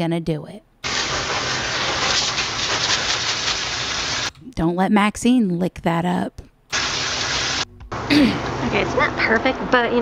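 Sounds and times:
hose nozzle spraying water: 0.8s - 4.3s, 6.7s - 7.6s.

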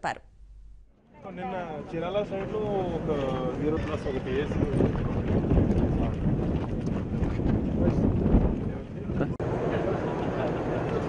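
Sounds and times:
people talking: 0.0s - 0.2s, 1.2s - 5.2s, 8.6s - 11.0s.

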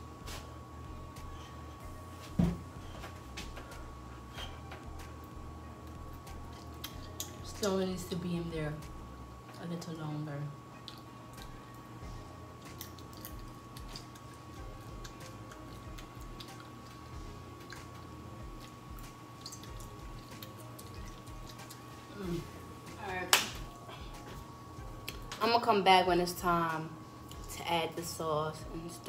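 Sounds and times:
steady hum: 0.0s - 29.0s
faint chewing: 5.8s - 7.5s, 10.8s - 11.8s, 12.6s - 22.6s.

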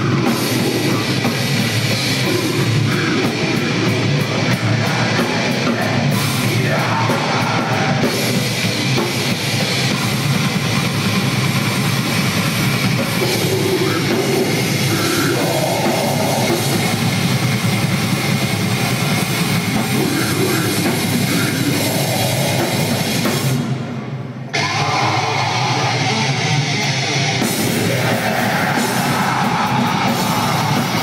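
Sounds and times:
very rapid low drum strokes: 0.0s - 23.8s, 27.4s - 31.0s
death metal band playing: 0.0s - 31.0s
heavily distorted guitar: 0.0s - 31.0s.

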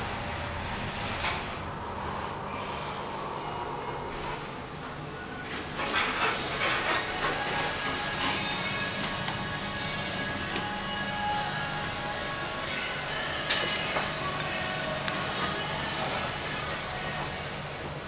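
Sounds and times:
elevator doors sliding open: 0.0s - 18.0s
background music: 6.2s - 18.0s.

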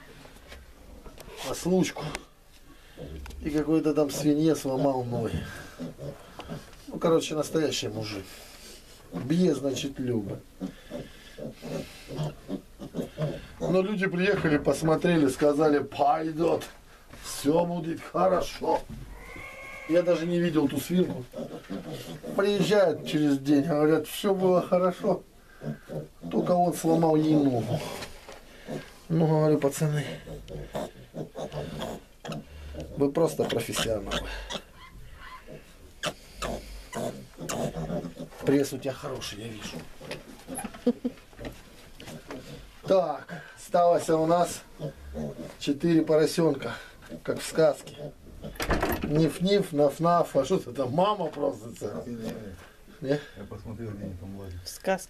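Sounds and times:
piglets grunting: 1.9s - 8.2s, 10.4s - 14.1s, 18.3s - 29.0s, 29.9s - 38.8s, 39.5s - 48.8s, 51.5s - 53.4s.

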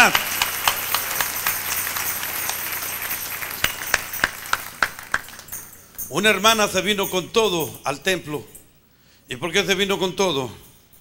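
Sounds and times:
congregation applauding: 0.0s - 6.1s.

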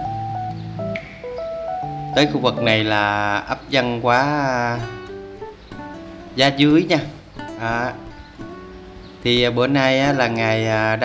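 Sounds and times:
low bass note: 0.0s - 2.9s
background music with held notes: 0.0s - 11.0s.

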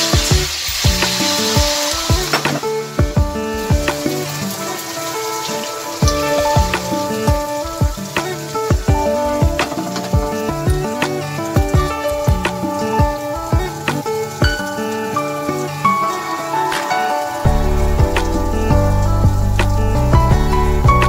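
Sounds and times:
eggs sizzling in hot oil: 0.0s - 20.0s.

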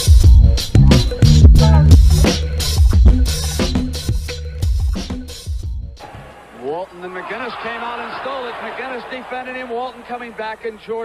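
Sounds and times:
announcer talking: 6.0s - 11.0s
arena crowd noise: 6.0s - 11.0s.

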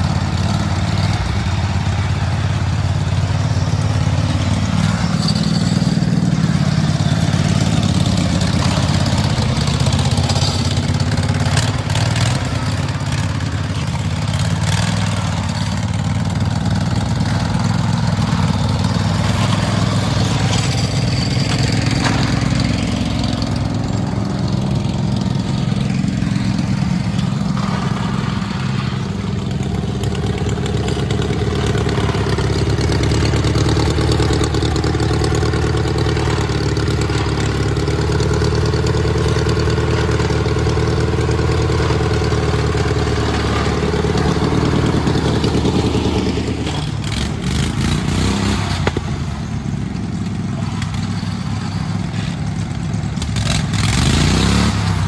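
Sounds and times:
lawn tractor engine running hard: 0.0s - 55.0s.

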